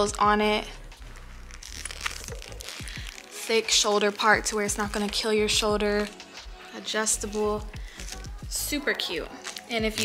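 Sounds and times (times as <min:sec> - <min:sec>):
quiet music with low beats: 0:00.0 - 0:10.0
bag crinkling and rustling: 0:01.0 - 0:05.3, 0:08.9 - 0:10.0.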